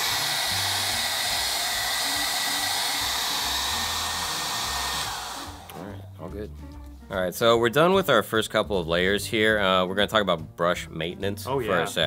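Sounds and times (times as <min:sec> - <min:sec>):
hair dryer blowing: 0:00.0 - 0:06.0.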